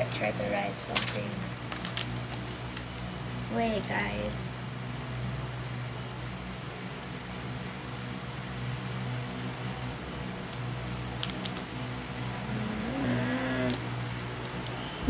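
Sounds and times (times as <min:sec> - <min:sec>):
electric fan humming: 0:00.0 - 0:15.0.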